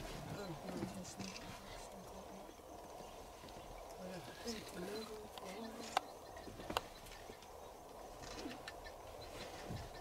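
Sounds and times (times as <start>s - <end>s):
distant bird calls: 0.0s - 10.0s.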